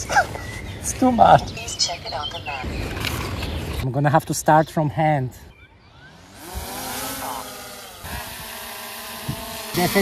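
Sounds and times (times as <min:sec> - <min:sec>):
drone propellers buzzing: 0:05.9 - 0:10.0.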